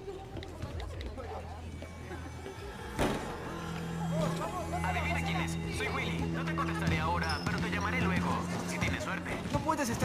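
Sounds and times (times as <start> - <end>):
crowd chattering: 0.0 - 10.0
steady low hum: 1.4 - 8.8.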